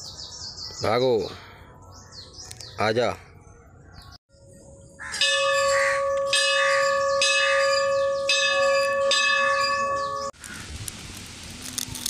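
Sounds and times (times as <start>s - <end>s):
bell ringing: 5.2s - 10.4s.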